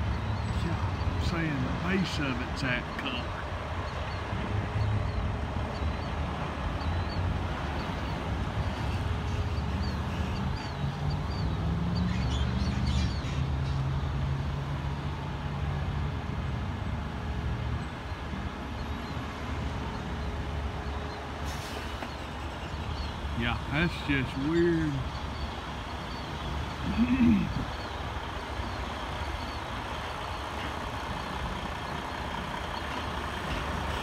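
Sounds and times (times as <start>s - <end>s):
vehicle engine rumbling: 0.0s - 34.0s.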